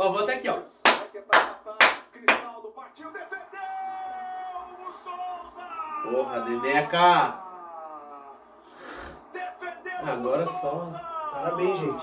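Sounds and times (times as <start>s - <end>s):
man clapping hands: 0.8s - 2.5s.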